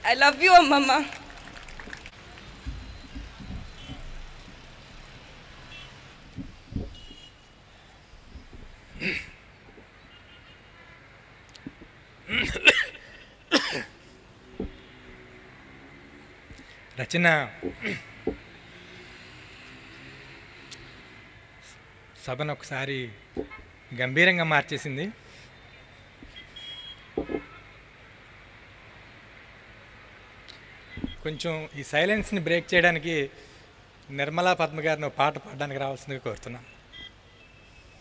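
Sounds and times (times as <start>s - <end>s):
faint background noise: 0.0s - 38.0s.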